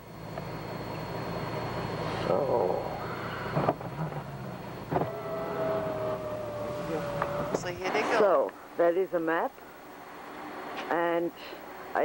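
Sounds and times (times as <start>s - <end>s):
small electric motor whining: 0.0s - 8.3s
car cabin rumble: 2.3s - 8.1s.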